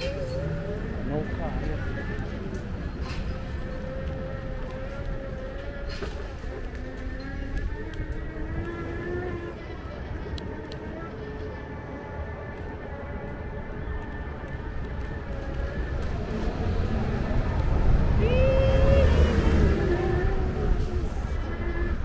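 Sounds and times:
city street traffic: 0.0s - 22.0s
wind and road rumble: 0.0s - 22.0s.

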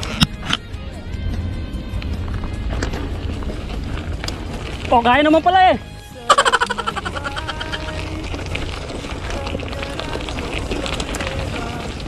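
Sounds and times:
bike rattling: 8.2s - 12.0s.

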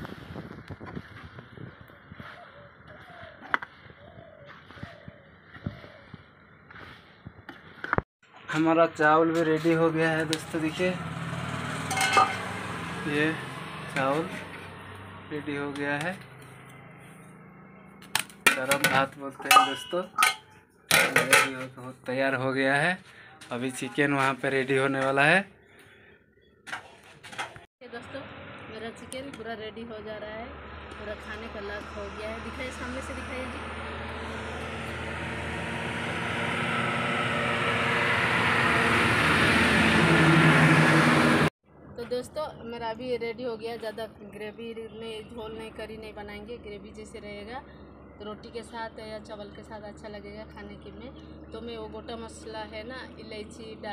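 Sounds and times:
passing engine drone: 10.3s - 15.6s, 28.0s - 41.5s
steel pot metal clink: 11.9s - 12.5s, 18.5s - 21.7s.

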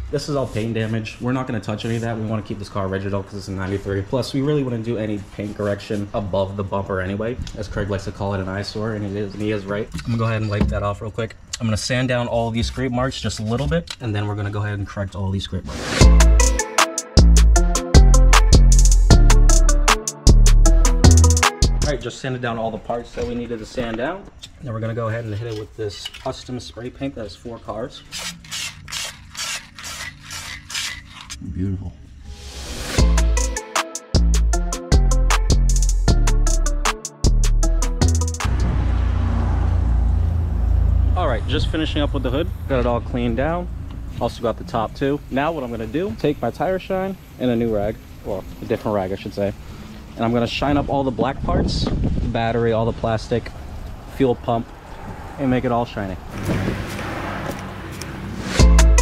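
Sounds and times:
spray can mixing ball rattling: 28.1s - 31.4s.

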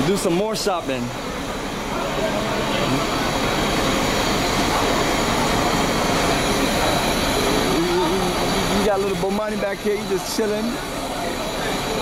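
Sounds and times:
coach engine idling: 0.0s - 12.0s.

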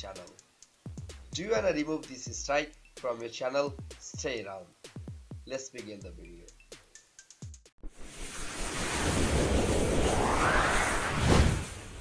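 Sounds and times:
rushing whoosh with rising sweep: 7.8s - 12.0s.

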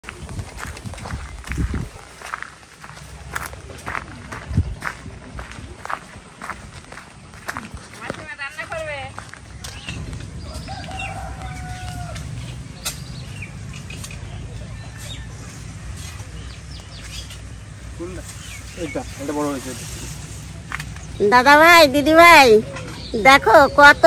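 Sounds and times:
footsteps on dry leaves: 0.0s - 21.4s.

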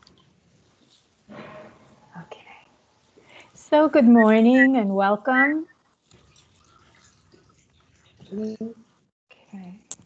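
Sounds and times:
quiet speech over video call: 0.8s - 10.0s.

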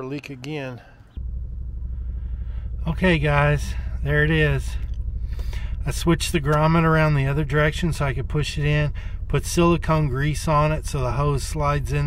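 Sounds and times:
steady low rumble: 1.1s - 12.0s.

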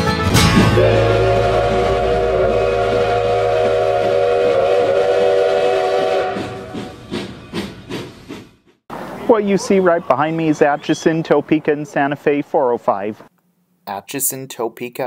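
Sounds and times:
bluegrass tune: 0.0s - 3.2s
steam locomotive whistle: 0.5s - 7.4s.

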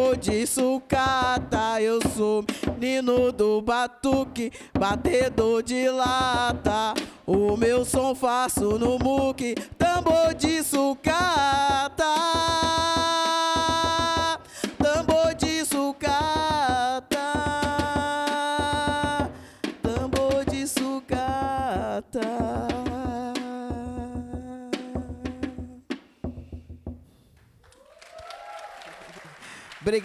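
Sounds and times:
scrap percussion drums: 0.0s - 27.6s
applause: 27.6s - 30.0s.

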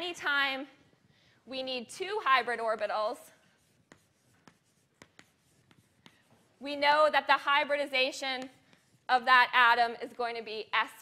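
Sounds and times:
chalk scratching on blackboard: 2.2s - 9.3s.

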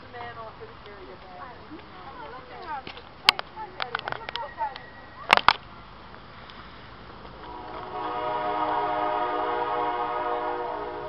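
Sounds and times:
train air horn chord: 7.4s - 11.0s.

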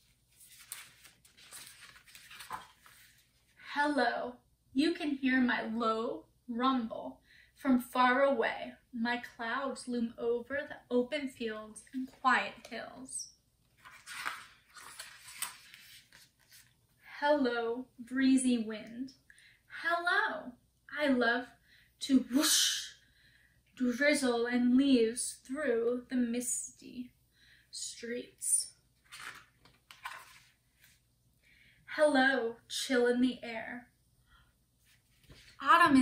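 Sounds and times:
book page turning: 0.0s - 3.5s, 13.7s - 16.8s, 29.0s - 31.0s, 34.8s - 35.6s
soft breath: 27.3s - 27.7s, 31.4s - 31.9s.

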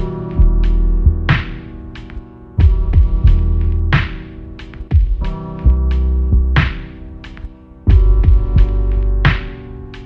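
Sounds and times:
deep booming bass: 0.0s - 1.4s, 2.6s - 4.0s, 5.0s - 6.7s, 7.9s - 9.4s
drum hits: 2.6s - 5.4s, 7.9s - 9.6s.

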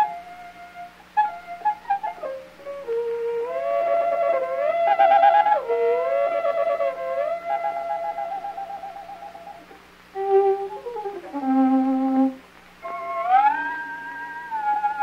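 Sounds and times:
solo violin playing: 0.0s - 15.0s.

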